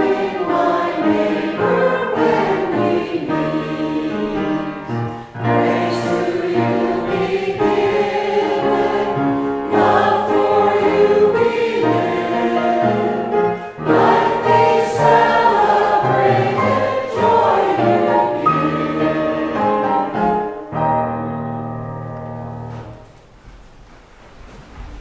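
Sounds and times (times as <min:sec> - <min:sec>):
church choir singing a hymn: 0:00.0 - 0:20.8
instrumental accompaniment: 0:00.0 - 0:23.9.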